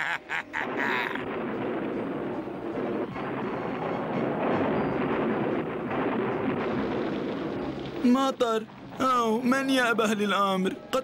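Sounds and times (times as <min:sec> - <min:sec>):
thunder rumble: 0:00.6 - 0:09.5
rain: 0:00.6 - 0:10.1.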